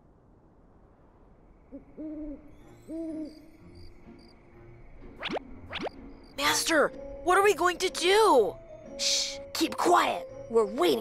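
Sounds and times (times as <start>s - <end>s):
owl hooting: 1.7s - 3.6s.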